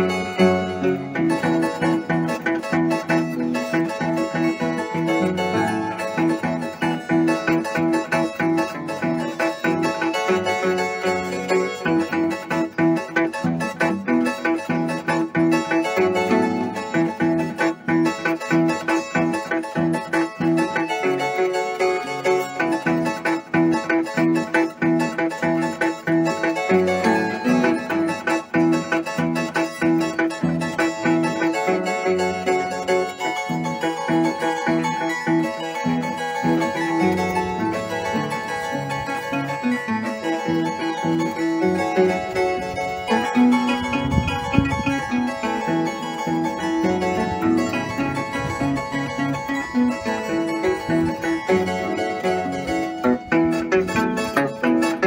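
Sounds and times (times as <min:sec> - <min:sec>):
harp playing fast melody: 0:00.0 - 0:55.0.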